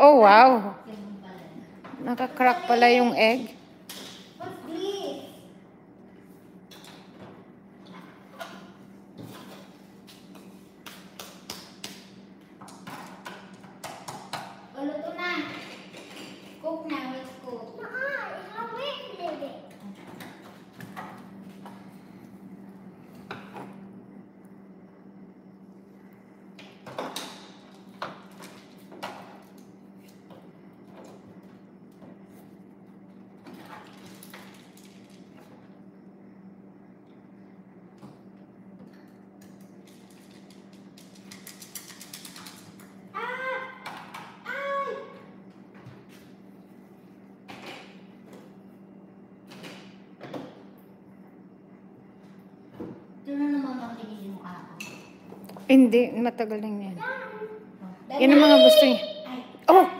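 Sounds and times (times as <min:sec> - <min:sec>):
steady low hum: 0:00.0 - 0:59.9
plastic toys tapping and clacking: 0:39.8 - 0:42.8.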